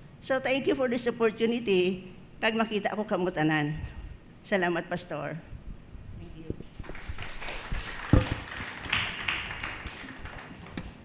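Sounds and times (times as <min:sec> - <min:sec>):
loud thump: 0:08.1 - 0:08.4
taps and knocks on wood: 0:08.1 - 0:08.4.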